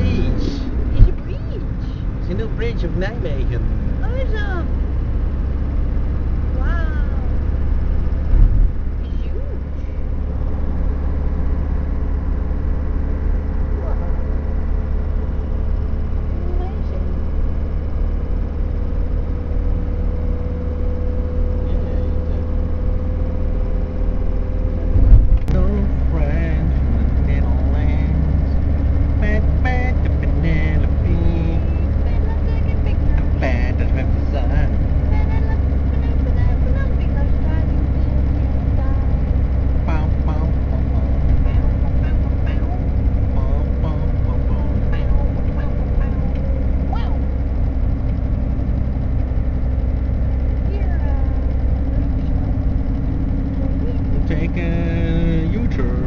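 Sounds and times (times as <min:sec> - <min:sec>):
engine rumble: 0:00.0 - 0:56.0
road noise inside cab: 0:00.0 - 0:56.0.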